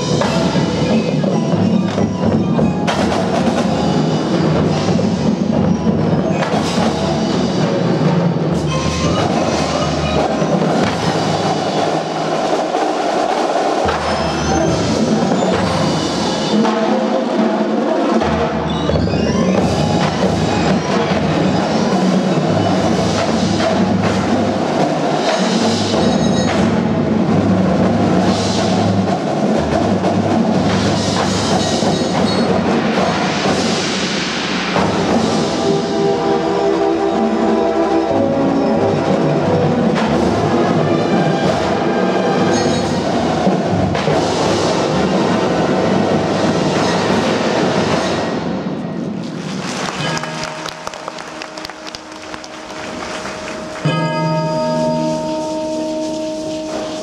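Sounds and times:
marching band playing: 0.0 - 57.0.

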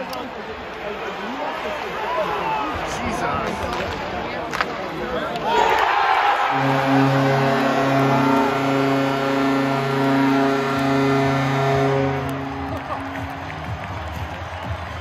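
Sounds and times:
crowd cheering: 0.1 - 3.0, 5.3 - 15.0
goal horn blast: 6.5 - 13.5.

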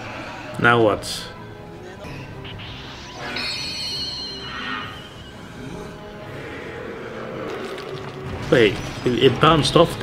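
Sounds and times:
background music: 0.0 - 10.0
high ringing energy beam effect: 2.1 - 6.3.

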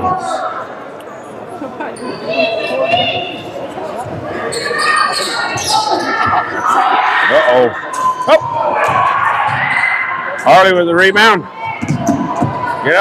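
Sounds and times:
spectators' voices echoing: 0.0 - 13.0
sneakers squeaking: 1.9 - 7.0.

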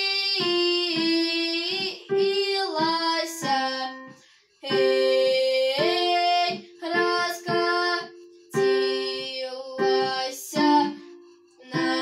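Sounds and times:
digital piano notes: 0.0 - 12.0
girl singing: 0.0 - 12.0.

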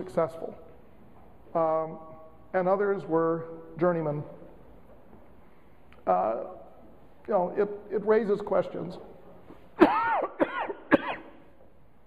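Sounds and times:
man coughing: 9.8 - 11.5.

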